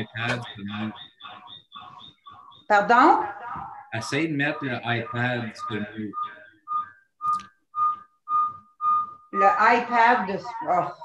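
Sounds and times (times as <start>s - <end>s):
pulsing audio feedback whistle: 0.0s - 11.0s.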